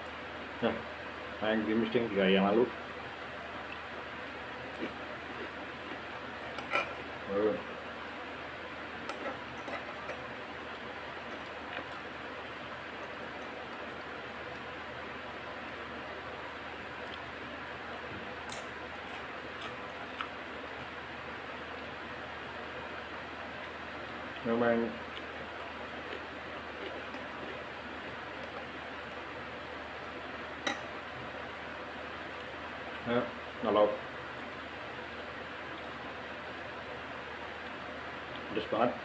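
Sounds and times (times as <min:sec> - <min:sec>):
crunchy food chewing: 0:23.5 - 0:28.8.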